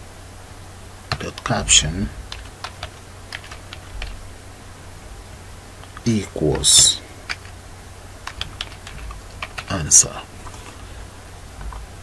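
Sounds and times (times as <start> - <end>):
computer keyboard typing: 1.1 - 4.2, 7.2 - 7.6, 8.2 - 9.8.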